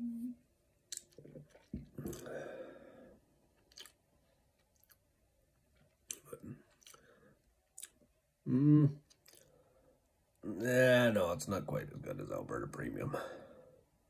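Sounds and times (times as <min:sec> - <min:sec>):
wet lip-smacks and tongue clicks: 0:00.9 - 0:02.3, 0:03.6 - 0:04.0, 0:06.0 - 0:07.0, 0:07.8 - 0:08.0
person swallowing: 0:00.9 - 0:02.4, 0:08.5 - 0:09.1
breathy exhale: 0:02.2 - 0:03.2.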